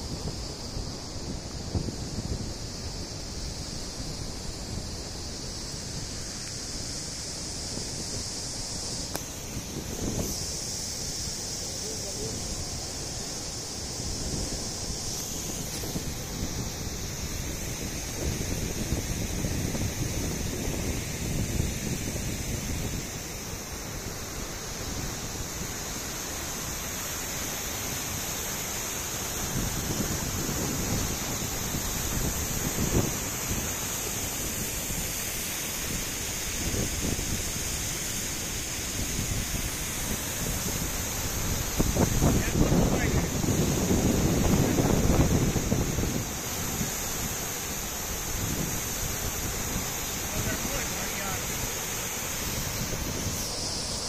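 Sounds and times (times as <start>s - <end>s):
floodwater rushing over weir: 22.8s - 54.0s
wind buffeting microphone: 29.4s - 35.2s, 38.8s - 51.4s.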